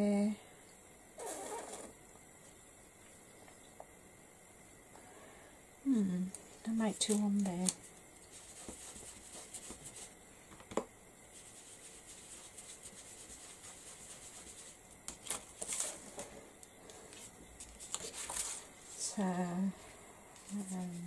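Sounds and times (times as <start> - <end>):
brush swishing and dabbing: 8.3 - 10.2, 11.3 - 14.9, 19.8 - 21.0
paper rustling: 11.4 - 19.4, 20.4 - 21.0.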